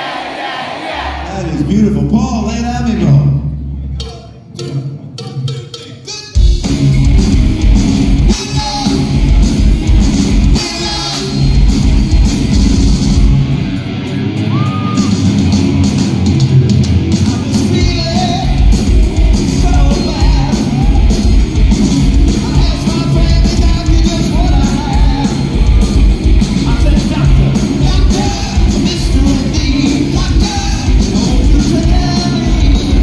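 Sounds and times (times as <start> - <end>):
live rock band playing: 6.3 - 33.0
person singing: 19.5 - 21.3, 22.3 - 25.5, 26.6 - 33.0.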